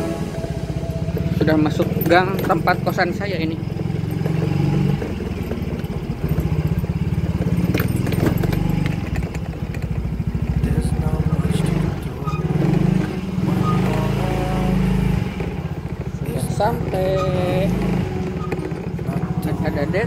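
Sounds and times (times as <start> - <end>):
motorcycle engine revving: 0.0 - 20.0.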